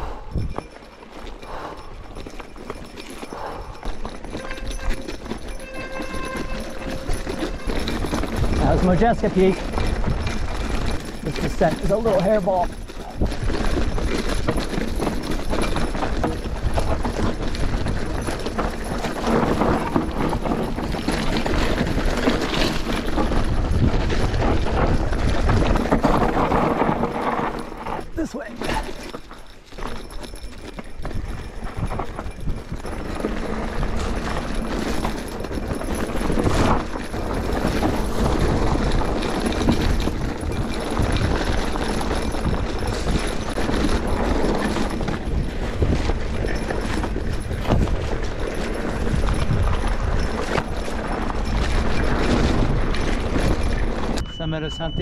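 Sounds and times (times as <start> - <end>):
wind rumble on microphone: 0.0 - 0.8, 3.3 - 55.0
bike rattles and knocks: 0.1 - 55.0
bike tyres crunching over rock: 3.8 - 54.2.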